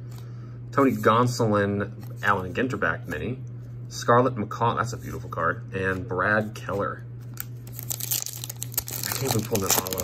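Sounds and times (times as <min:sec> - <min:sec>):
foil wrapper crinkling: 0:07.3 - 0:10.0.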